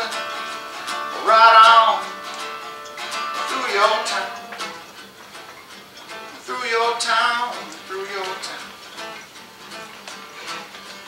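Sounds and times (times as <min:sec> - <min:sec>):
man singing: 0:00.0 - 0:02.4, 0:03.2 - 0:04.6, 0:06.4 - 0:08.7
acoustic guitar strumming: 0:00.0 - 0:11.0.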